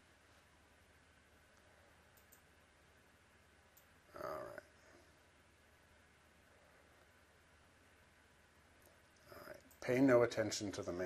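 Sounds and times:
computer mouse clicks: 2.1s - 2.5s, 3.7s - 4.0s.

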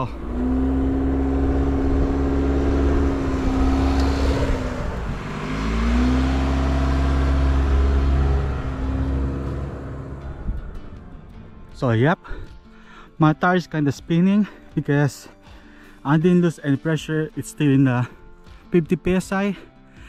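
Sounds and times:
car engine pulling under load: 0.0s - 12.7s.

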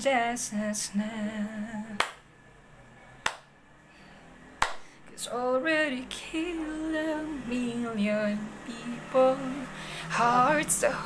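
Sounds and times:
finger snaps: 2.0s - 2.2s, 3.2s - 3.5s, 4.6s - 4.8s.

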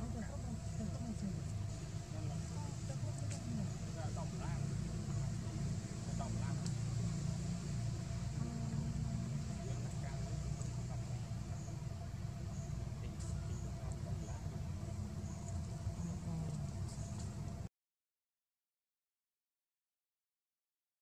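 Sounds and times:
low engine rumble: 0.0s - 17.7s.

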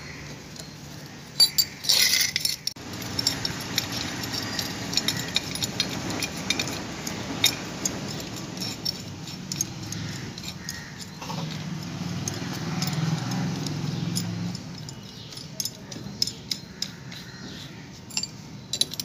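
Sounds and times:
metallic clicks of jack crank: 0.5s - 17.5s, 18.1s - 19.0s.

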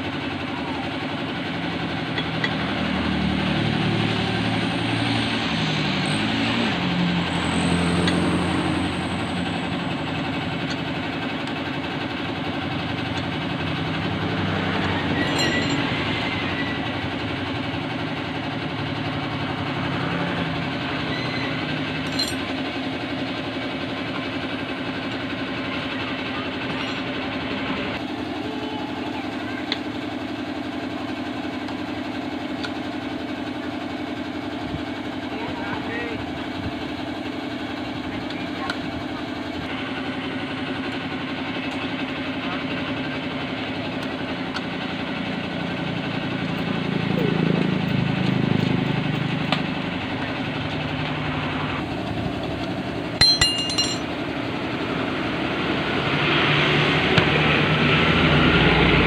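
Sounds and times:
voices talking: 25.6s - 30.0s.

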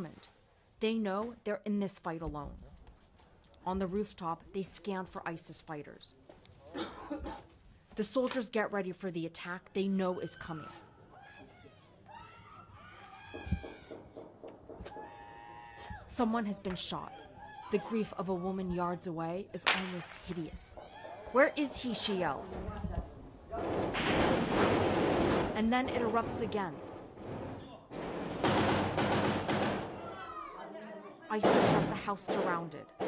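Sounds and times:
rapid rifle shots: 28.1s - 30.0s.

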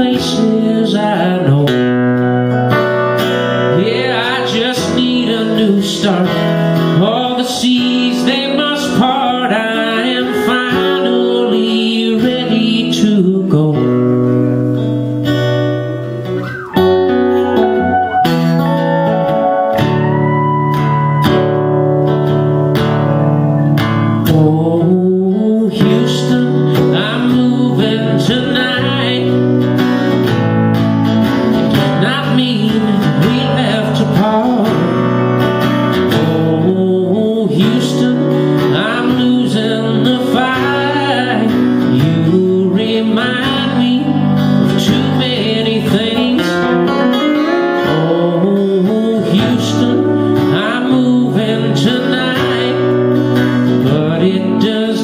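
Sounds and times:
acoustic guitar strumming: 0.0s - 55.0s
pedal steel guitar gliding notes: 1.8s - 5.4s, 13.8s - 24.4s, 27.4s - 36.9s.

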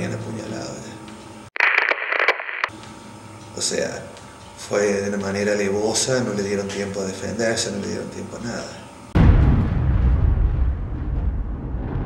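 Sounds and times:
crackling radio static burst: 1.6s - 2.7s.

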